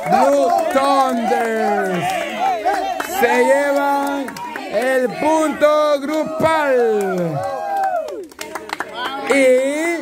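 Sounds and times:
hand claps: 0:00.0 - 0:05.2, 0:06.0 - 0:09.8
people shouting: 0:00.0 - 0:08.2.

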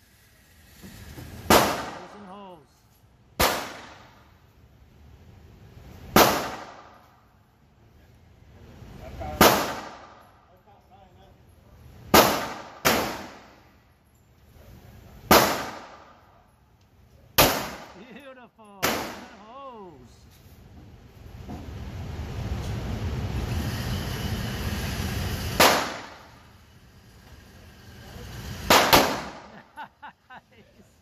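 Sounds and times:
handgun shots with reverberation: 0:03.4 - 0:04.2, 0:06.2 - 0:07.0, 0:09.4 - 0:10.2, 0:12.1 - 0:13.6, 0:15.3 - 0:16.2, 0:17.4 - 0:18.0, 0:18.8 - 0:19.4, 0:25.6 - 0:26.3, 0:28.7 - 0:29.5.

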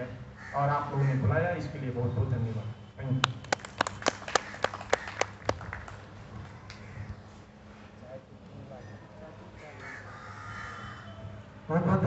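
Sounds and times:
crow cawing: 0:00.4 - 0:01.2, 0:04.3 - 0:05.4, 0:06.6 - 0:07.3, 0:08.9 - 0:11.3.

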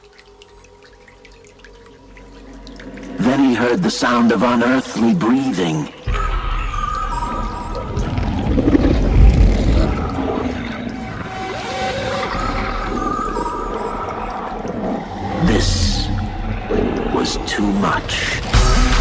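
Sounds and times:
wavering high tones: 0:06.1 - 0:17.2
low rumble: 0:06.9 - 0:11.4.

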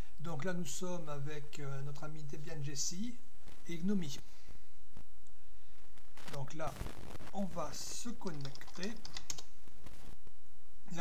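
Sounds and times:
computer keyboard typing: 0:08.2 - 0:09.5.

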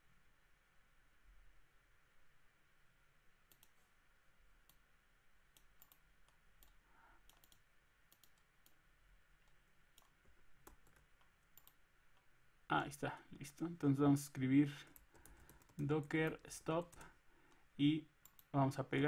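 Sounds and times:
computer mouse clicks: 0:03.5 - 0:03.8, 0:05.5 - 0:08.8, 0:09.4 - 0:12.3, 0:14.9 - 0:17.6, 0:18.2 - 0:18.5.

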